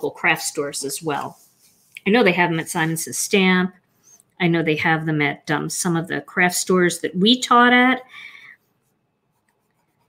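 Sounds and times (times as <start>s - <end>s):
colored pencil stroking on card: 0.2s - 4.2s, 8.5s - 10.0s.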